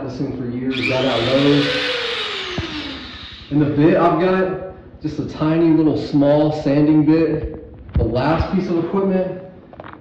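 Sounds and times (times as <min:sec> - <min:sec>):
rotary tool whine spinning down: 0:00.7 - 0:03.9.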